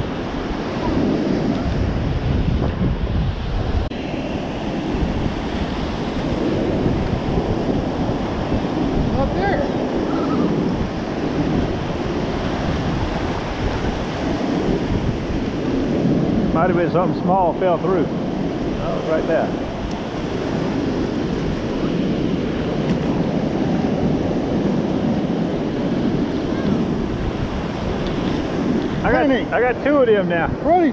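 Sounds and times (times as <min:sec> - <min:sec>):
ocean surf breaking: 0:00.0 - 0:30.9
wind buffeting microphone: 0:00.0 - 0:30.9.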